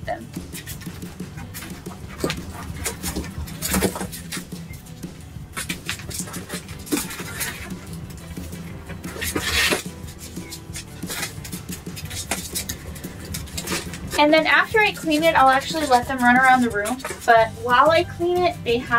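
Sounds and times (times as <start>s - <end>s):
rustling: 0.1s - 18.4s.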